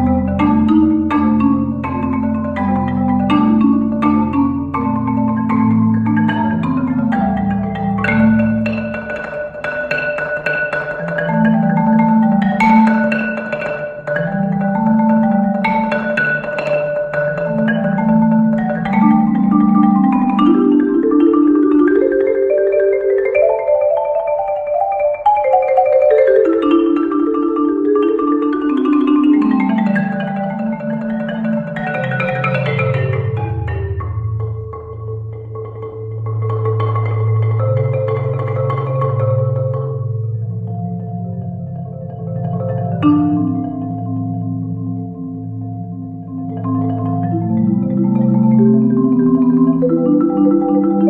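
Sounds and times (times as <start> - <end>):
marimba playing: 0.0 - 51.0.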